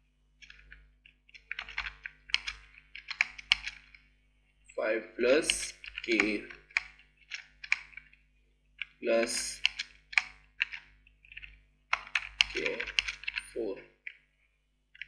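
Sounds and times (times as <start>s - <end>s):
computer keyboard typing: 0.4s - 4.0s, 4.7s - 8.2s, 8.8s - 15.0s.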